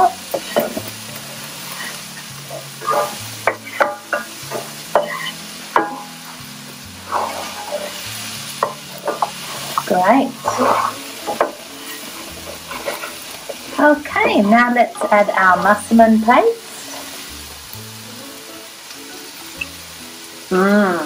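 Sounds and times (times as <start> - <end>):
spatula scraping and clicking pan: 0.0 - 6.1, 7.0 - 15.3
onions sizzling in oil: 0.0 - 21.0.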